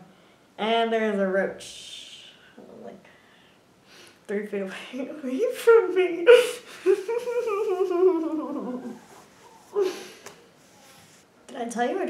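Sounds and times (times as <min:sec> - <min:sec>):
woman whining: 0:06.2 - 0:10.2.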